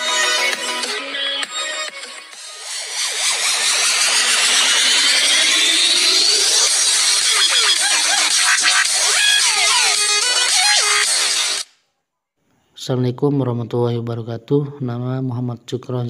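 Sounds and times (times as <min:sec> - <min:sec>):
noisy electronic sweep: 0:02.4 - 0:11.7
gliding synth tones: 0:02.5 - 0:09.2.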